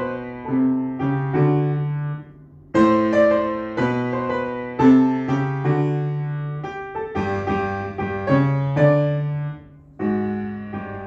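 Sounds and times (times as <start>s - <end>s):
upright piano playing blues: 0.0s - 11.0s.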